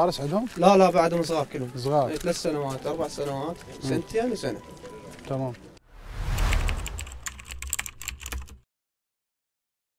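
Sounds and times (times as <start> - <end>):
low bass hum: 6.0 - 7.6
keyboard typing clicks: 6.6 - 8.6.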